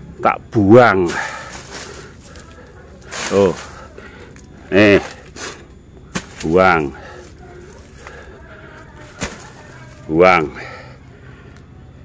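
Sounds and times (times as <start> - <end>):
dry leaves rustling and crackling: 0.9 - 10.8.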